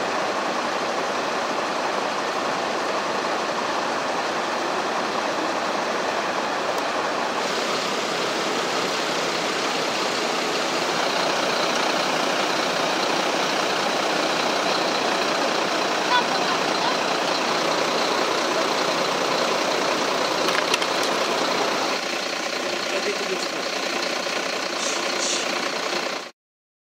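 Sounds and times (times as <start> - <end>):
diesel engines idling: 0.0 - 26.3.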